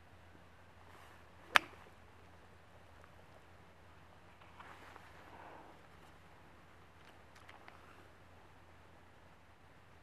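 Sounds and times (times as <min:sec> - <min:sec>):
sharp crack of club striking ball: 0:01.5 - 0:01.8.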